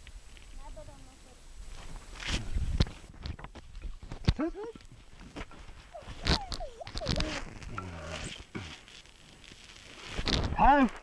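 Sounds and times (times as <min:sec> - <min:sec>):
voice-like calls: 0:06.0 - 0:08.4.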